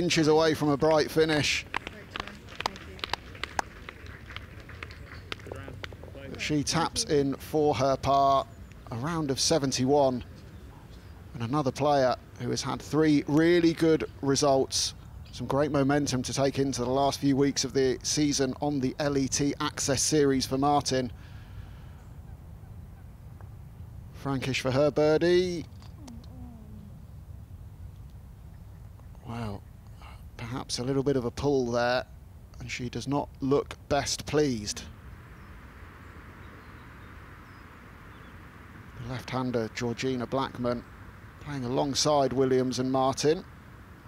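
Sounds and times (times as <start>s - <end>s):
faint outdoor background: 0.0s - 44.0s
steady low rumble: 0.0s - 44.0s
people clapping lightly: 0.9s - 6.5s.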